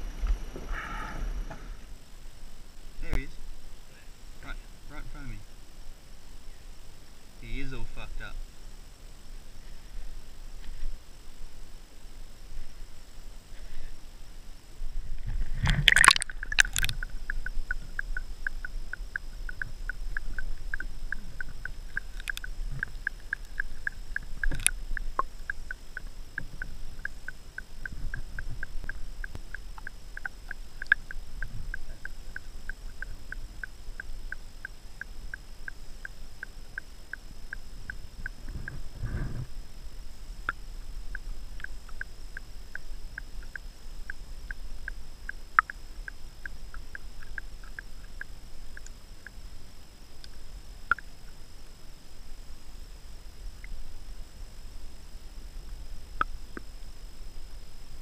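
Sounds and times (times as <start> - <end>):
muffled underwater sound: 15.2 - 34.3
camera splashing into water: 15.5 - 17.0
regular ticking: 15.9 - 38.9, 40.4 - 49.4, 50.2 - 51.1.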